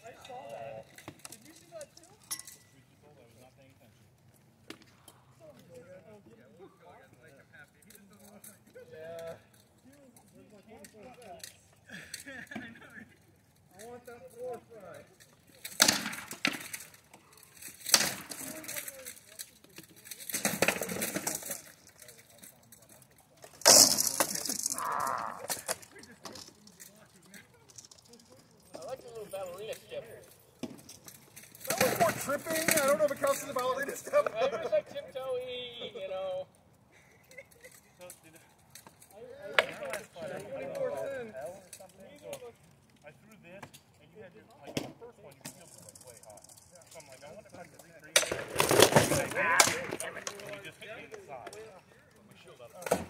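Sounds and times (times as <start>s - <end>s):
quiet voices: 18.3s - 30.3s.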